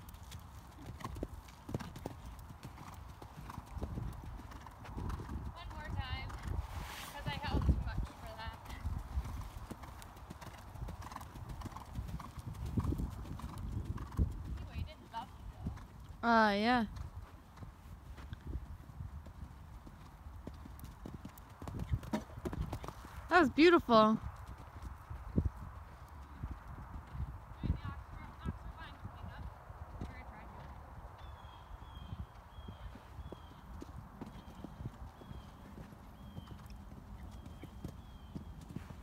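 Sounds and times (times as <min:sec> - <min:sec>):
hoofbeats on sand: 0:00.0 - 0:15.9, 0:32.5 - 0:39.0.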